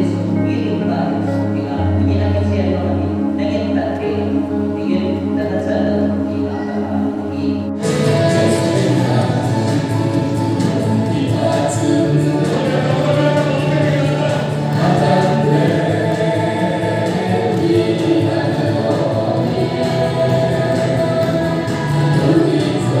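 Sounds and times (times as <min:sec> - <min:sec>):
sustained musical accompaniment: 0:00.0 - 0:23.0
man and woman singing duet: 0:07.7 - 0:23.0.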